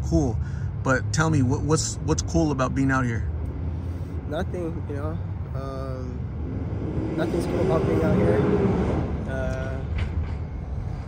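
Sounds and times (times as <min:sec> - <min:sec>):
outdoor street noise: 0:00.0 - 0:11.0.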